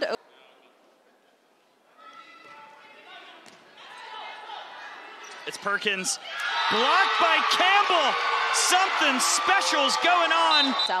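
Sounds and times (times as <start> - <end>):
crowd voices in echoing hall: 0.0 - 11.0.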